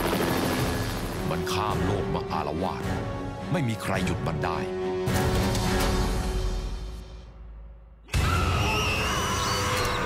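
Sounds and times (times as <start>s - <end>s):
helicopter rotor chop: 0.0s - 1.3s.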